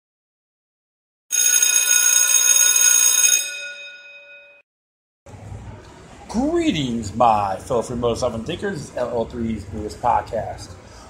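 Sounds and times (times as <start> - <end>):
bell ringing: 1.3 - 4.6.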